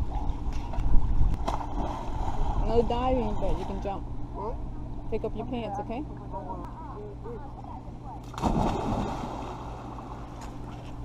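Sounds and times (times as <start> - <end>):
person splashing into pool: 8.3 - 10.2
water churning: 8.3 - 10.8.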